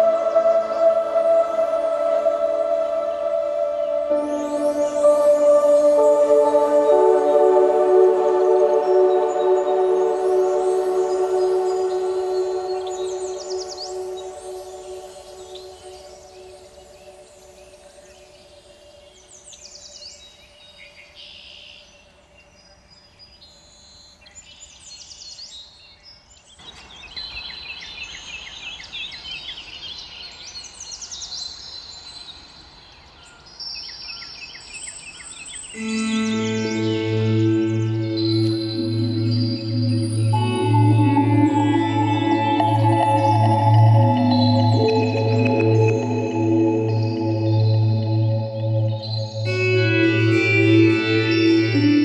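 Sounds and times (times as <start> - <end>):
music: 0.0 - 18.8, 35.8 - 52.0
birds chirping and singing: 0.0 - 20.4, 33.0 - 52.0.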